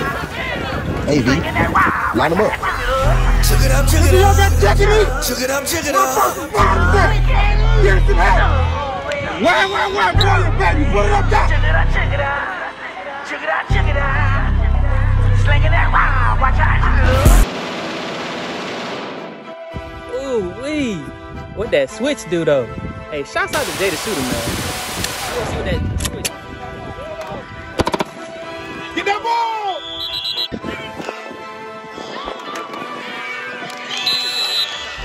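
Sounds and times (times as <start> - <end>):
voices shouting: 0.0 - 13.9, 28.4 - 31.0
rap backing track: 2.5 - 17.4
referee's whistle: 29.6 - 30.6, 33.9 - 35.0.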